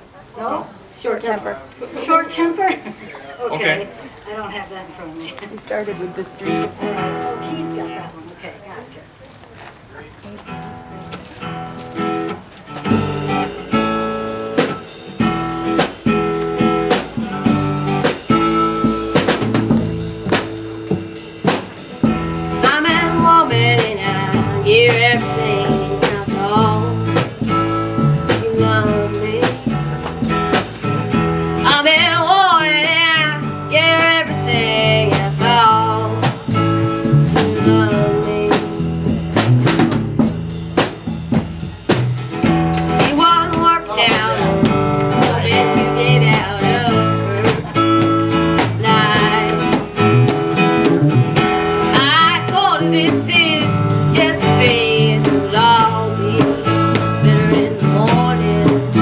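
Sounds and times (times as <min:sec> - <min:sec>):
live blues folk band: 0:03.9 - 0:59.0
person singing: 0:22.6 - 0:27.4, 0:28.0 - 0:30.0, 0:31.6 - 0:36.5, 0:37.3 - 0:38.9, 0:42.9 - 0:59.0.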